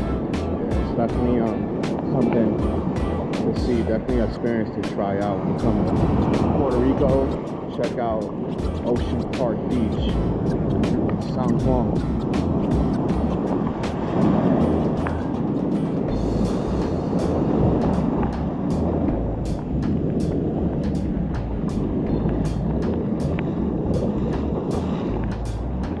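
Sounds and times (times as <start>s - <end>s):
ocean surf breaking: 0.0s - 26.0s
wind buffeting microphone: 0.0s - 26.0s.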